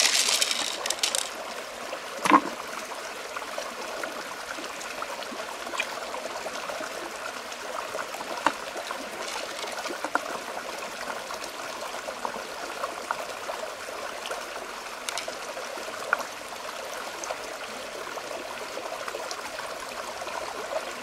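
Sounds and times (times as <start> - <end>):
shells clicking on stone: 0.0 - 1.4
stream trickling over rocks: 0.0 - 21.0.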